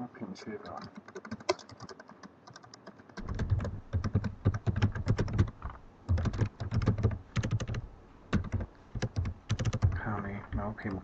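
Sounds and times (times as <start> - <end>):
typing on computer keyboard: 0.6 - 11.0.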